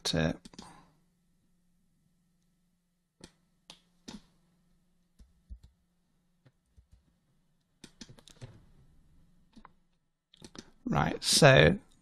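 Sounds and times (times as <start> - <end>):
computer mouse clicks: 3.2 - 4.3, 7.8 - 8.6, 10.4 - 10.8.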